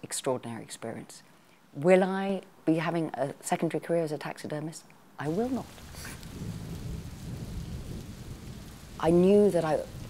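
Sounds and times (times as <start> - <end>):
steady rain: 5.2 - 10.0
thunder rumble: 5.3 - 10.0.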